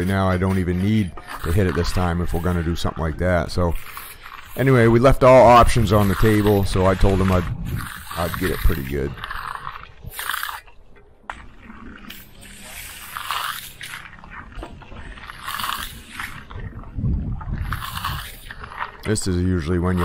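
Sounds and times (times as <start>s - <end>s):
trowel scraping concrete: 0.0s - 20.0s.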